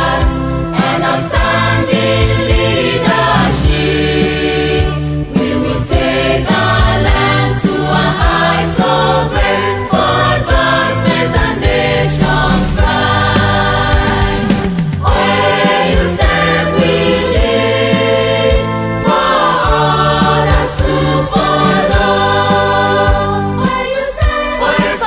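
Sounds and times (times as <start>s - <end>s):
choir singing: 0.0s - 25.0s
instrumental backing: 0.0s - 25.0s
steady drum beat: 0.0s - 25.0s.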